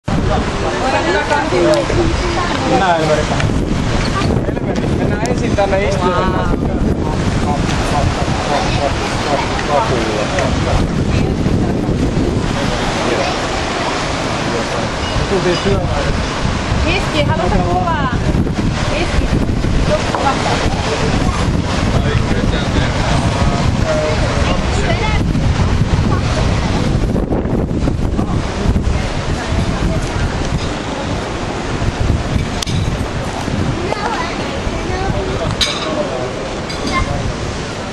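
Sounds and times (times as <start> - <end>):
faint voices: 0.0 - 37.9
surf breaking on rocks: 0.0 - 37.9
wind buffeting microphone: 0.0 - 37.9.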